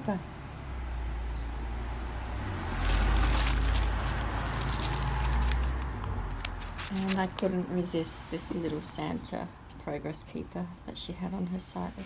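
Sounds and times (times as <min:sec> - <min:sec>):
passing vehicle engine rumble: 0:00.0 - 0:09.2
plastic packet crinkling: 0:02.6 - 0:07.5.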